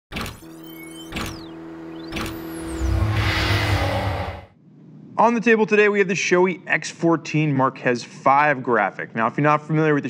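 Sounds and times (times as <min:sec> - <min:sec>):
high sweeping tones: 0:00.5 - 0:04.6
sharp hits: 0:01.2 - 0:04.6
held low tone: 0:01.3 - 0:04.6
loud low rumbling swell: 0:01.9 - 0:04.6.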